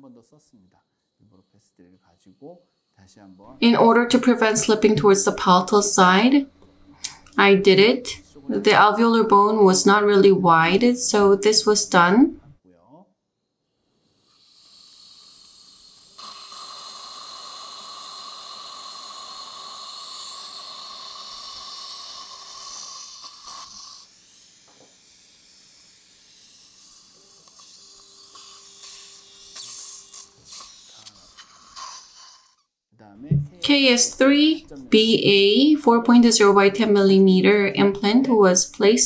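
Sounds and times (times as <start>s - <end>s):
surgical suction hiss: 0.0s - 12.5s, 13.6s - 32.7s
dental drill whining: 1.0s - 12.4s, 13.5s - 32.7s, 33.6s - 39.0s.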